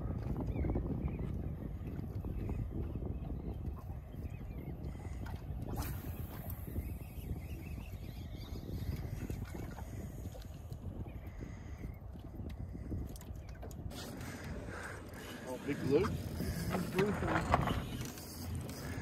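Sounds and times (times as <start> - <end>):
wind on microphone: 0.0 - 19.0.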